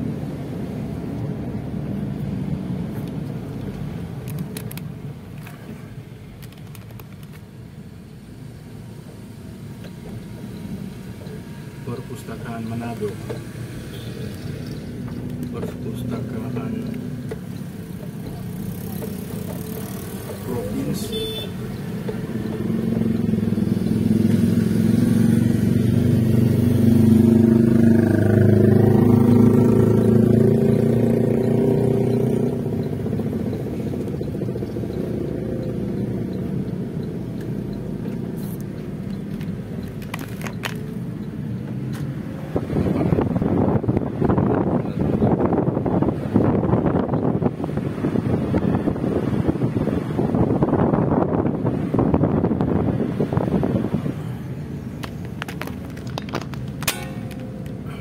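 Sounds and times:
vehicle engine running: 0:09.2 - 0:47.7, 0:50.3 - 0:58.0
wind buffeting microphone: 0:42.5 - 0:56.8.

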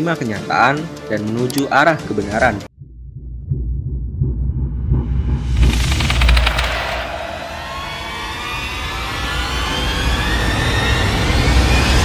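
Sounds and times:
deep low rumble: 0:02.7 - 0:09.4
rising riser tone: 0:03.7 - 0:12.0.

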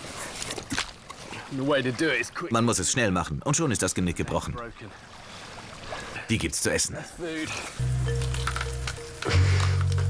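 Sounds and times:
man talking: 0:06.2 - 0:07.7.

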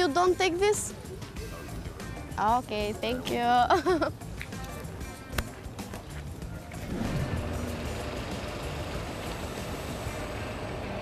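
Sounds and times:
background music: 0:00.0 - 0:11.0
street traffic noise: 0:00.0 - 0:11.0
bus engine running: 0:06.2 - 0:11.0.

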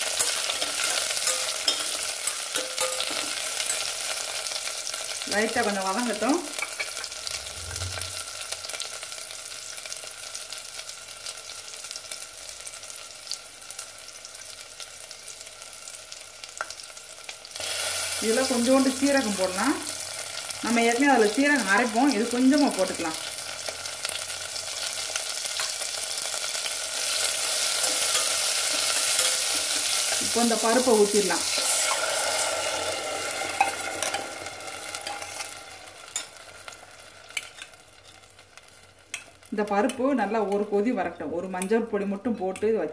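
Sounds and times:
spoon stirring vegetables: 0:00.0 - 0:05.2, 0:24.7 - 0:31.8, 0:33.3 - 0:40.7
vegetables sizzling in a cooker: 0:00.0 - 0:42.9.

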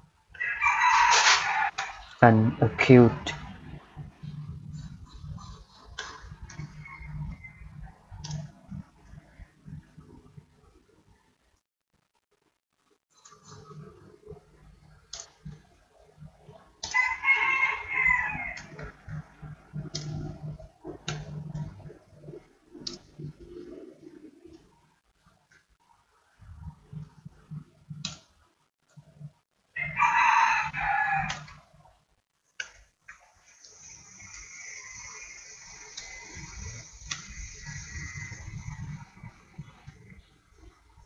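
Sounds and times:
rooster crowing: 0:00.4 - 0:02.0, 0:16.9 - 0:18.9, 0:29.8 - 0:31.6
steady high-pitched hiss: 0:32.7 - 0:41.0.

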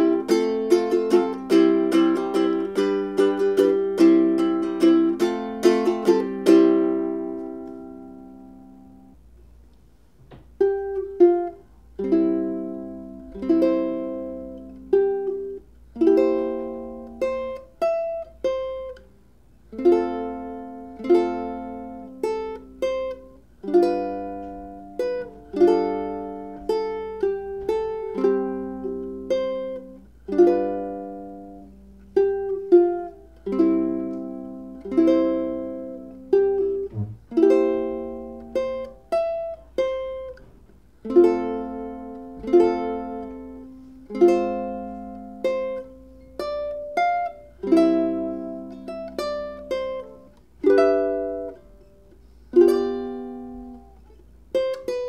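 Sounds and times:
fingerstyle ukulele playing: 0:00.0 - 0:09.3, 0:10.2 - 0:55.0.

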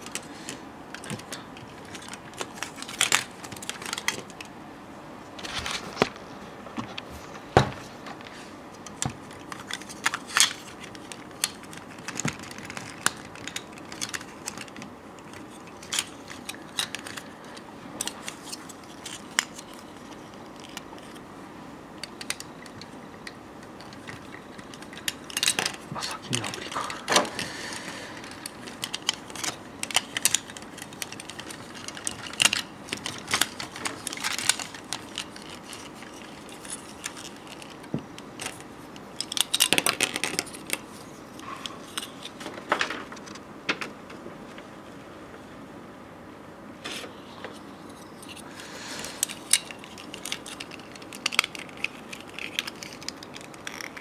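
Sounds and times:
plastic parts clicking: 0:00.9 - 0:04.5, 0:08.8 - 0:21.2, 0:22.0 - 0:25.8, 0:28.2 - 0:41.0, 0:49.0 - 0:54.0.

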